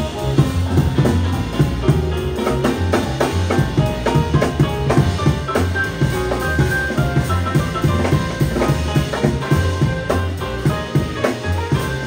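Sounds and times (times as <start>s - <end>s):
drum kit: 0.0s - 12.0s
piano: 0.0s - 12.0s
walking upright bass: 0.0s - 12.0s.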